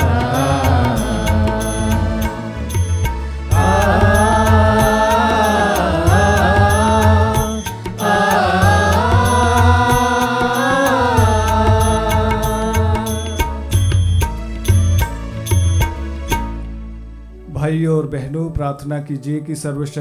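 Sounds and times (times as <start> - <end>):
sustained hymn melody: 0.0 - 14.4
ticking beat and bass: 0.0 - 16.7.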